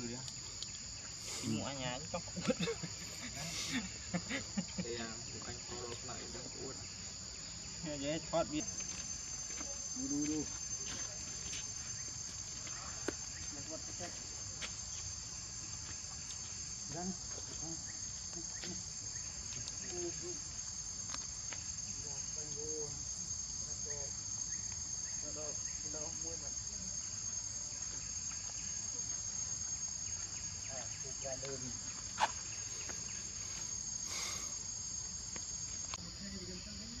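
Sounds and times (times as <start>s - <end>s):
high-pitched insect chorus: 0.0s - 37.0s.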